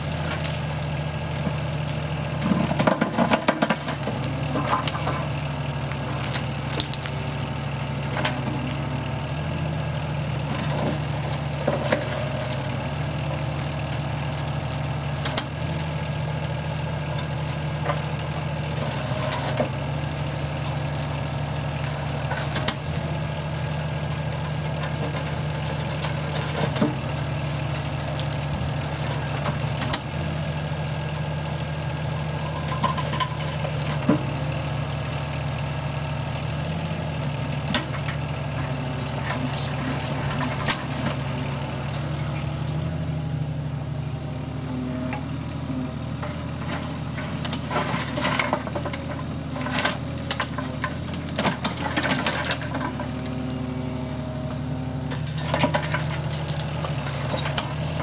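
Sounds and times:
diesel engine running: 0.0 - 58.0
concrete rubble cracking: 2.6 - 7.6.

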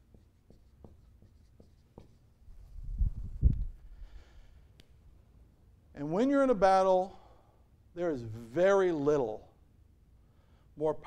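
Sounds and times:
marker writing on whiteboard: 0.0 - 2.4.

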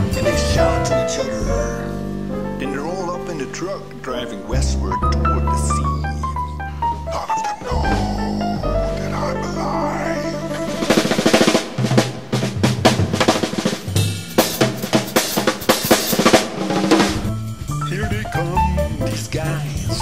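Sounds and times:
bass and chord notes: 0.0 - 12.4, 14.0 - 20.0
snare drum and cymbals: 10.8 - 20.0.

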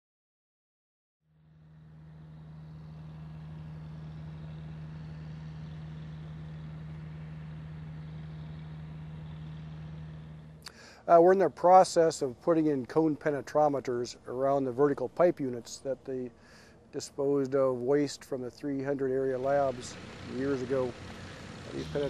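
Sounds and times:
heavy equipment engine humming: 1.4 - 22.0.

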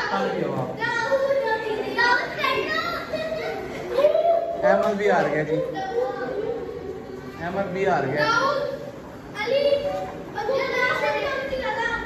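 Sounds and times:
children calling out and talking: 0.0 - 12.0.

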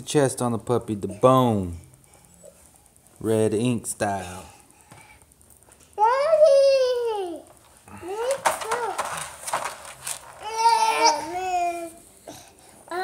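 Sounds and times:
toddler straining cries: 10.4 - 13.0.

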